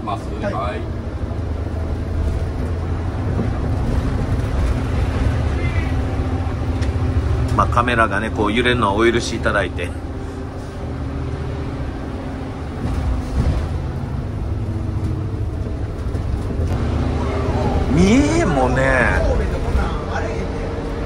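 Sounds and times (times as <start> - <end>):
bus engine and tyres rumbling: 0.0 - 21.0
man speaking: 17.9 - 20.4.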